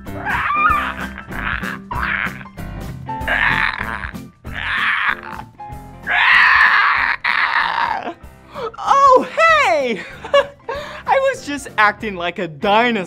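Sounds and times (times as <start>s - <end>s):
light background music: 0.0s - 13.0s
man imitating dinosaur roars: 3.3s - 5.5s, 6.1s - 8.1s.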